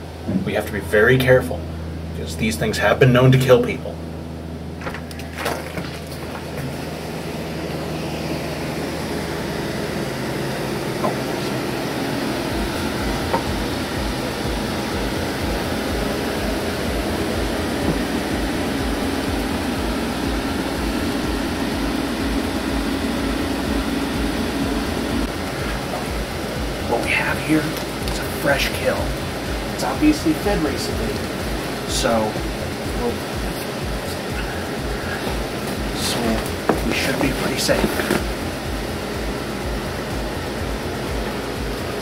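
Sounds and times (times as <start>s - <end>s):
low even pulse: 0.0s - 4.8s, 6.4s - 42.0s
steady rumbling: 0.0s - 42.0s.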